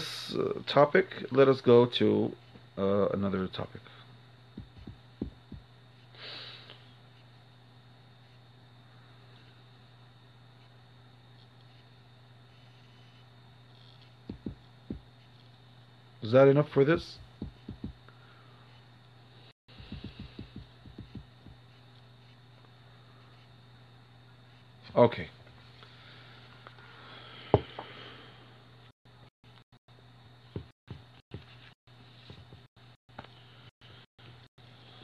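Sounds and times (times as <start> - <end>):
faint steady hum: 0.0 - 35.0
soft low thumps: 4.5 - 5.7, 14.2 - 15.1, 17.1 - 18.0, 19.7 - 21.6
soft low thuds: 4.6 - 5.7, 14.3 - 15.1, 17.2 - 18.0, 19.7 - 21.6.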